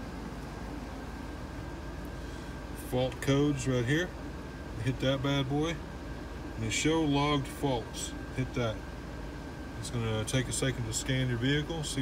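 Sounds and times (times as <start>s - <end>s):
faint steady whine: 0.0s - 12.0s.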